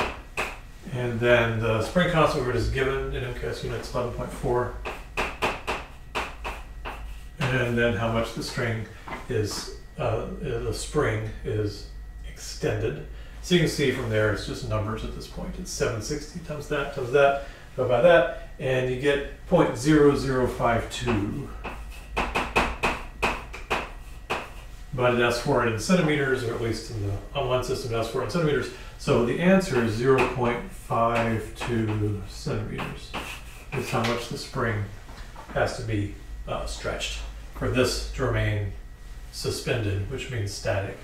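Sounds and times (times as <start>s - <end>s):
chalk tapping and scraping on blackboard: 0.0s - 0.6s, 4.8s - 7.7s, 21.0s - 24.8s, 29.6s - 30.4s, 31.2s - 32.1s, 32.8s - 34.3s.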